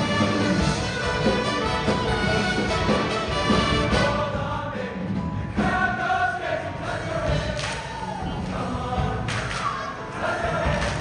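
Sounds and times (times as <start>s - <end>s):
choir singing: 0.0s - 11.0s
live band accompaniment: 0.0s - 11.0s.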